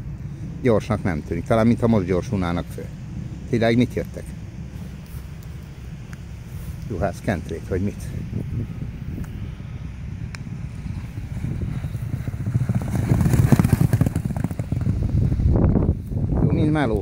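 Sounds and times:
horses galloping on sand: 10.4s - 16.0s.

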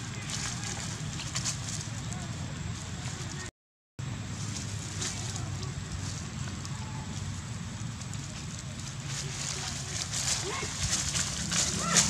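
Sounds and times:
dry leaves rustling: 0.0s - 12.0s.

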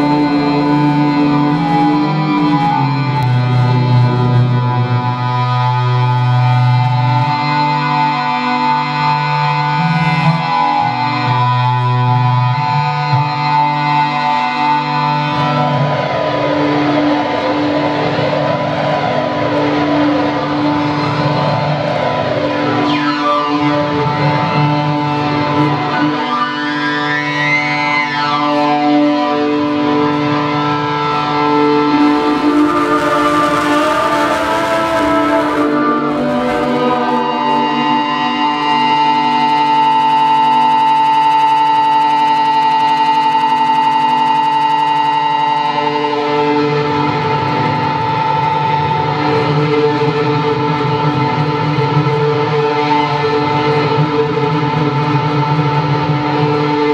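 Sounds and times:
electronic drones: 0.0s - 56.9s
swooping pitch glides: 31.9s - 45.8s.

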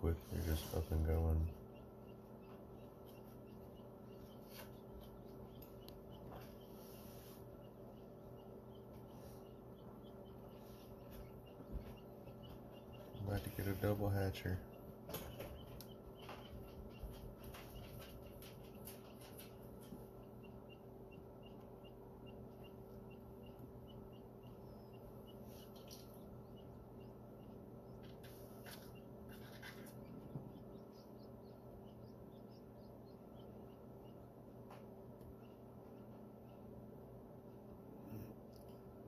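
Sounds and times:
chicks peeping: 0.0s - 39.0s
incubator humming: 0.0s - 39.0s.

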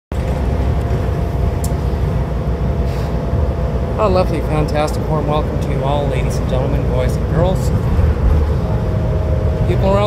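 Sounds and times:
bus engine and road drone: 0.1s - 10.0s.

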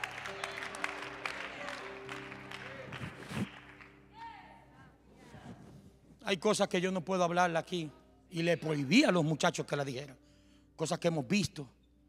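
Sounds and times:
people clapping: 0.0s - 4.1s
soft background music chords: 0.0s - 12.0s.

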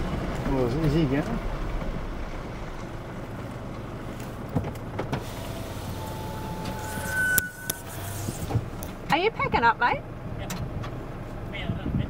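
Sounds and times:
engine and road rumble: 0.0s - 12.0s
power window electric whine: 5.1s - 9.0s.

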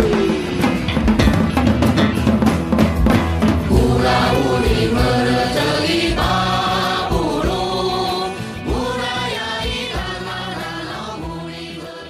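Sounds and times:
drums playing: 0.0s - 12.0s
sustained bass: 0.0s - 12.0s
choir singing: 3.6s - 12.0s.

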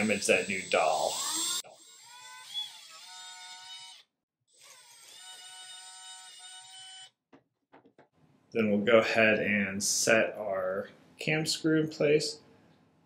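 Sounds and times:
cordless drill boring into wood: 0.0s - 7.1s.

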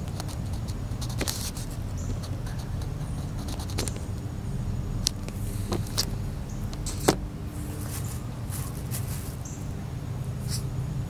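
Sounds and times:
steady low rumble: 0.0s - 11.0s
crayon scratching on paper: 0.2s - 4.0s.

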